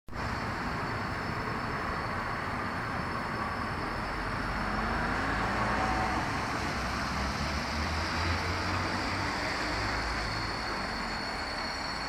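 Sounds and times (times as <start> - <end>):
city traffic noise: 0.1 - 12.0.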